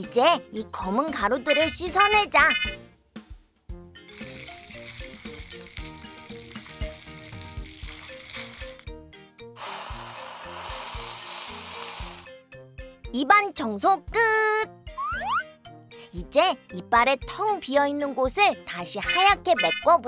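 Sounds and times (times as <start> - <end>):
light background music: 0.0 - 20.0
water spray nozzle hissing: 4.1 - 8.8, 9.6 - 12.3.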